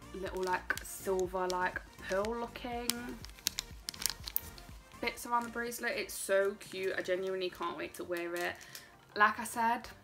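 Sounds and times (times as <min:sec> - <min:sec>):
plastic packaging crinkling: 0:00.0 - 0:05.9, 0:06.6 - 0:09.0.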